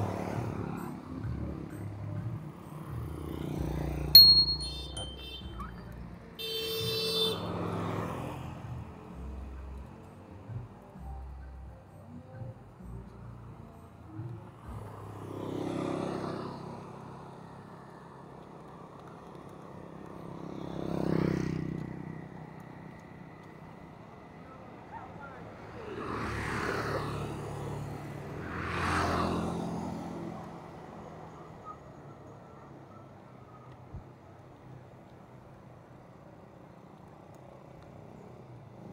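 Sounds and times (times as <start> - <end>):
vehicles passing close by: 0.0 - 38.9
wind and road noise: 13.1 - 38.9.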